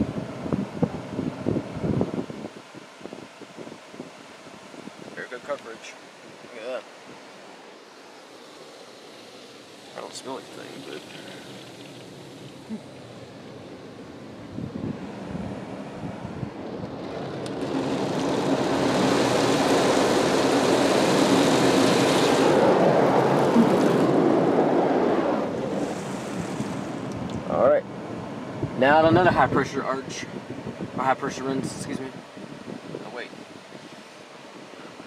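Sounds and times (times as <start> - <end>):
car wash spray hitting roof: 16.8 - 27.5.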